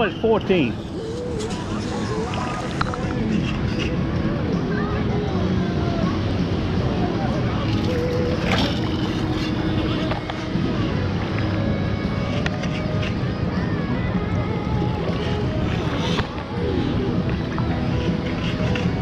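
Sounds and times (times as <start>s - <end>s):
background voices: 0.0s - 19.0s.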